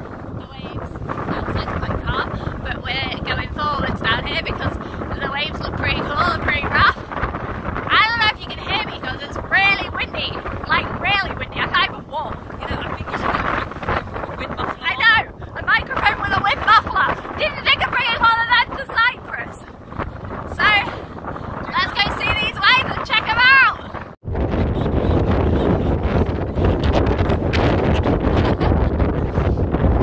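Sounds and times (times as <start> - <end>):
wind buffeting microphone: 0.0 - 30.0
woman talking: 0.4 - 7.0, 7.9 - 19.7, 20.5 - 21.0, 21.6 - 24.0
woman laughing: 27.8 - 29.2.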